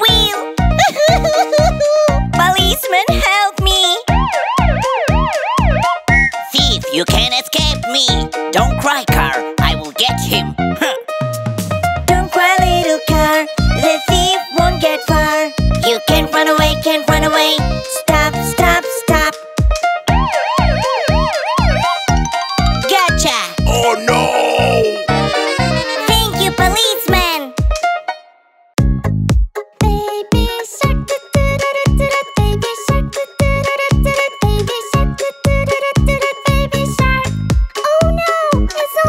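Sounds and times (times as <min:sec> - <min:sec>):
children's song drum beat: 0:00.0 - 0:10.4, 0:11.3 - 0:24.5, 0:26.0 - 0:27.8, 0:28.8 - 0:39.0
police siren wailing: 0:04.1 - 0:06.0, 0:20.1 - 0:22.8.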